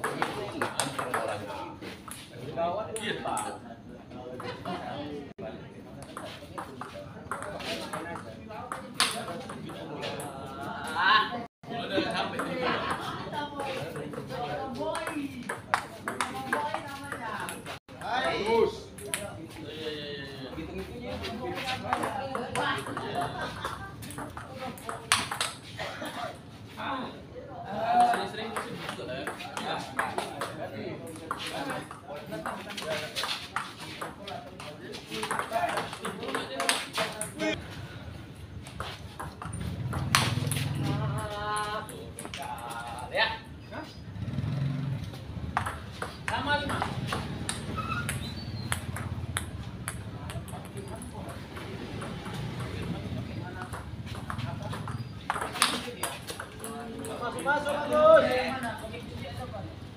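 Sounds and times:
people talking: 0:00.0 - 0:38.1, 0:38.7 - 0:44.0, 0:45.6 - 0:59.9
table tennis ball clicking: 0:45.6 - 0:52.8, 0:53.6 - 0:57.5.

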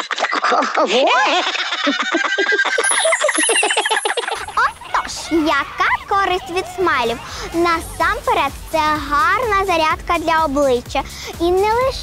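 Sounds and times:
cartoon voices laughing: 0:00.0 - 0:09.6.

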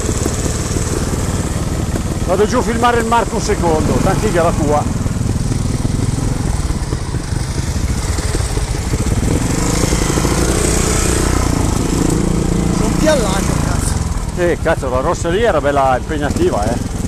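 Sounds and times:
motorcycle engine at low revs: 0:00.0 - 0:17.0.

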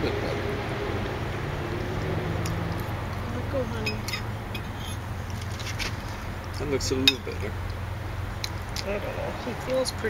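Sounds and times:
low outdoor rumble: 0:00.0 - 0:10.0
metal utensil scraping a plate: 0:03.8 - 0:05.9.

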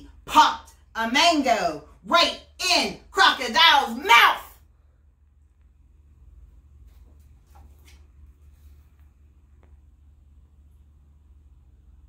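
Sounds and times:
faint room hum: 0:00.0 - 0:12.0
soft rustles of puppet and book: 0:06.4 - 0:10.1.

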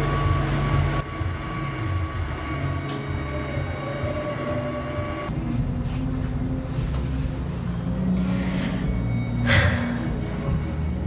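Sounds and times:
faint sustained high tones: 0:00.0 - 0:05.5
low steady rumbling: 0:00.0 - 0:11.0.

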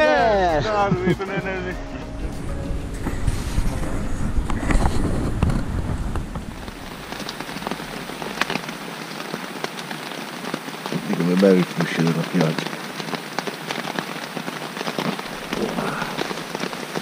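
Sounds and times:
rain on tent fabric: 0:00.0 - 0:17.0
low rumble: 0:01.8 - 0:08.5.

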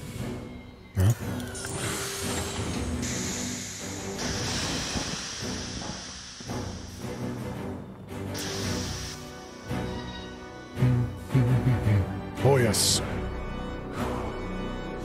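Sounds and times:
ominous film score: 0:00.0 - 0:15.0
spaceship engine rush: 0:01.0 - 0:10.1.

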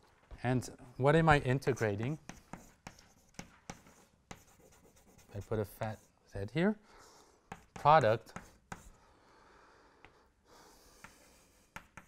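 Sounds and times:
chalk tapping on blackboard: 0:01.6 - 0:06.1, 0:07.4 - 0:09.0, 0:10.9 - 0:12.0.

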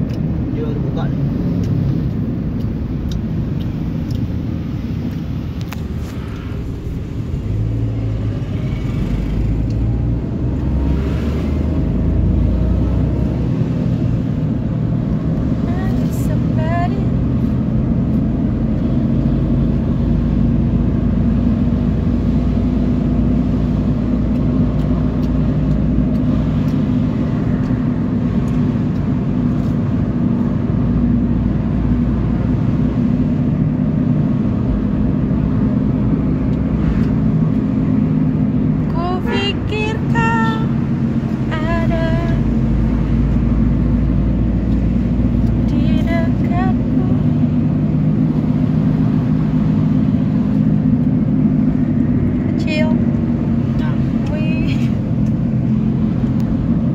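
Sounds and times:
car road and engine rumble: 0:00.0 - 0:56.9.

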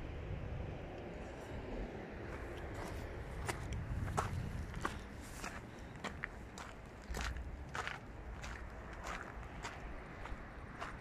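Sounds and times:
low rumble: 0:00.0 - 0:05.6
footsteps on gravel: 0:02.3 - 0:11.0.

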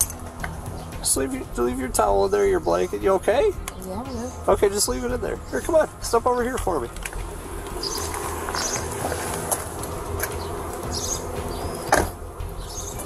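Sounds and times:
outdoor background noise: 0:00.0 - 0:13.0
high bird chirps: 0:07.7 - 0:09.5, 0:10.3 - 0:13.0.

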